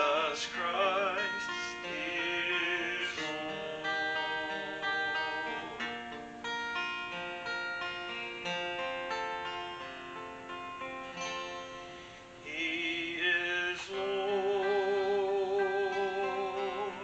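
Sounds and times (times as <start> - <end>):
man singing: 0.0 - 6.0, 12.4 - 17.0
acoustic guitar strumming: 0.0 - 17.0.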